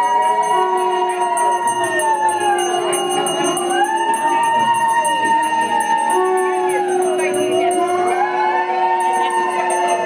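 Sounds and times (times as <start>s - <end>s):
conch shell notes: 0.0s - 10.0s
howl-like ululation: 0.0s - 10.0s
ringing bells or cymbals: 0.0s - 10.0s.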